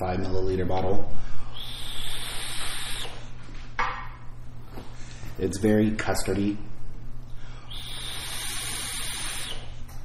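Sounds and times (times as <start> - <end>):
high coil whine: 0.0 - 3.6
breath exhaling vapour: 1.5 - 3.3, 7.6 - 9.8
vape air hiss: 1.5 - 3.3, 7.7 - 9.8.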